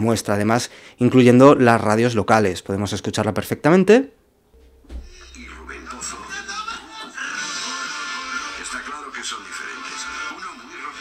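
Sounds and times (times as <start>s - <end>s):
music from phone speaker: 5.1s - 11.0s
voice from phone speaker: 5.2s - 11.0s.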